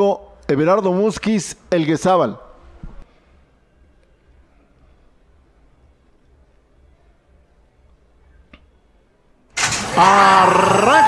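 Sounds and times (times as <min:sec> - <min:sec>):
starting gate metallic clang: 0:09.6 - 0:10.2.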